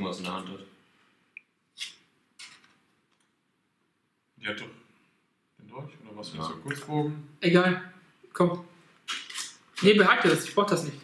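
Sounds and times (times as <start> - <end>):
soft card rustle: 9.0 - 10.8.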